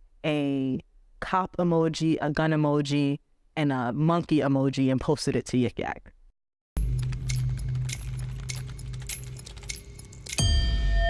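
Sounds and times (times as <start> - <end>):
glitchy clicks and ticks: 6.8 - 10.4.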